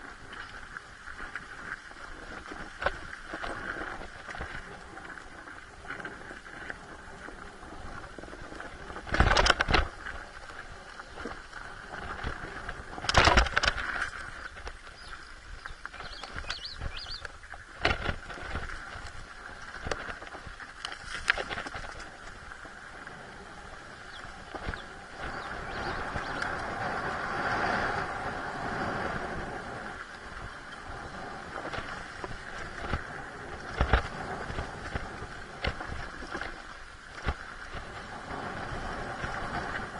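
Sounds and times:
bike knocking and rattling over rocks: 8.2 - 10.3, 11.8 - 15.1, 15.7 - 17.2, 17.8 - 22.4, 31.6 - 38.0.

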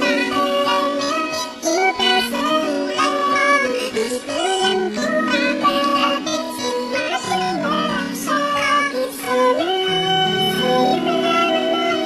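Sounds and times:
high-pitched sped-up singing: 0.0 - 12.0
pop backing track: 0.0 - 12.0.

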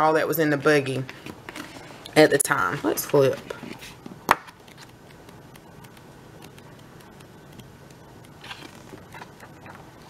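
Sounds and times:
pages rustling: 1.0 - 10.0.

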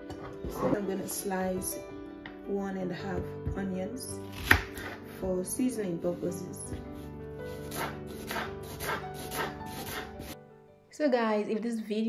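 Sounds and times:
background music: 0.0 - 12.0
knife slicing onion on wooden board: 4.3 - 5.0, 7.0 - 10.4.

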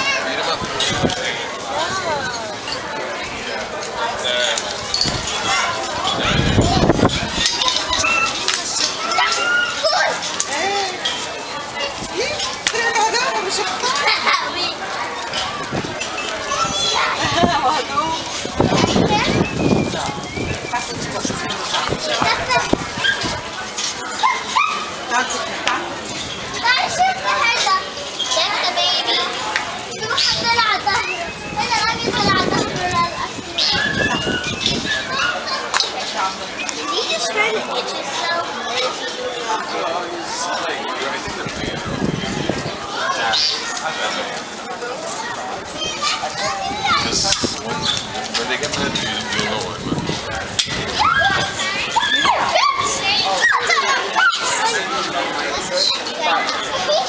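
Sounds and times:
children talking and calling out: 0.0 - 57.0.

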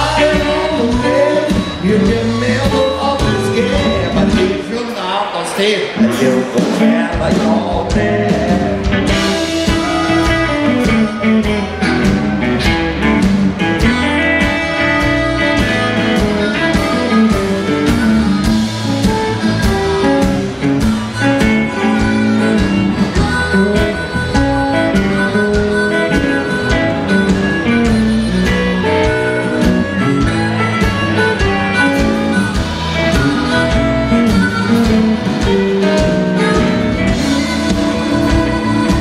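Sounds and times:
harmonica: 0.0 - 4.8, 6.2 - 39.0
steady drum beat: 0.0 - 4.8, 6.1 - 39.0
electric guitar: 0.0 - 4.9, 5.8 - 39.0
bass: 0.0 - 39.0.

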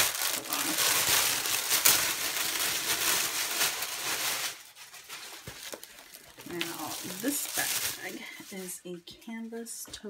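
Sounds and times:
plastic bag crinkling: 0.0 - 8.9.

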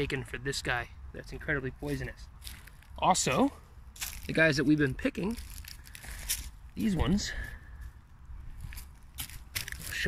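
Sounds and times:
dry leaves and twigs crunching: 1.2 - 10.0.

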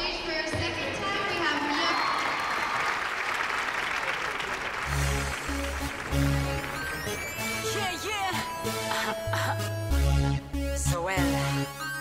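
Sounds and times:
audience applauding: 1.1 - 9.6
music: 4.8 - 12.0.

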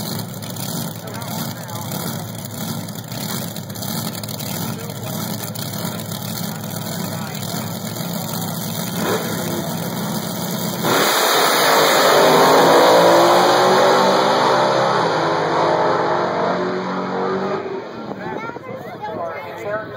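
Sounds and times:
dragster engine idling: 0.0 - 10.8
engine revving: 0.0 - 18.2
dragsters launching at full throttle: 0.0 - 19.8.

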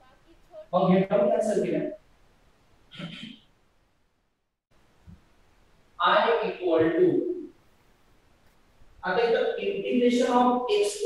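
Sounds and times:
man speaking: 0.7 - 2.0, 6.0 - 7.5.

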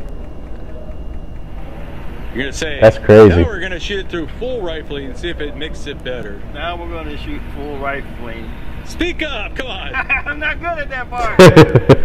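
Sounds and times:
low background rumble: 0.0 - 11.2.

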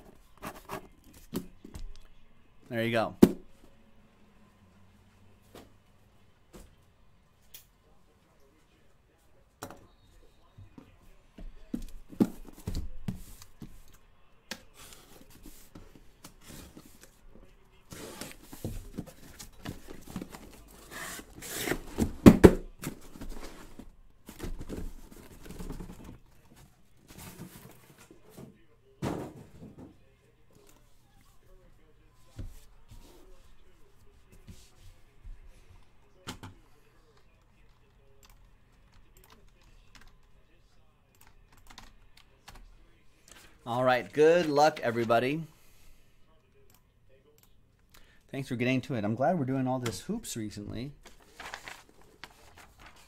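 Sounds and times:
boxes knocking: 19.7 - 26.2.

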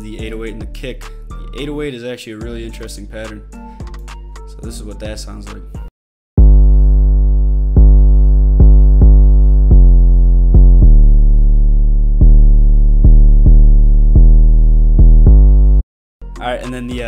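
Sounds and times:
eight-oh-eight bass notes: 0.0 - 1.8, 6.4 - 15.8.

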